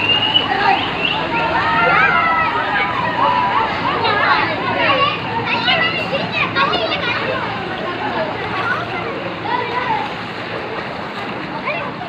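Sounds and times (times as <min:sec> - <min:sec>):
children calling and chattering: 0:00.0 - 0:12.0
flowing floodwater rushing: 0:00.0 - 0:12.0.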